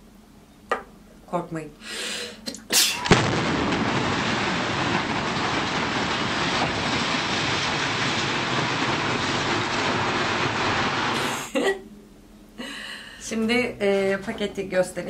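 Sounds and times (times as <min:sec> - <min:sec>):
rumbling roar of collapse: 0:03.1 - 0:11.4
building collapse crack: 0:03.1 - 0:11.5.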